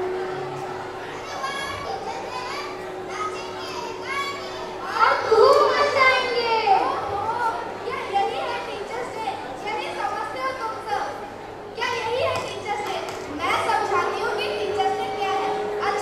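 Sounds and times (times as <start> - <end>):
children speaking into microphones: 0.0 - 16.0.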